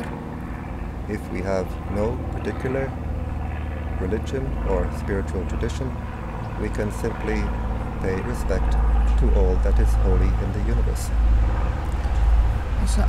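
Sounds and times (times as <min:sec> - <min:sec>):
low steady rumble: 0:00.0 - 0:13.0.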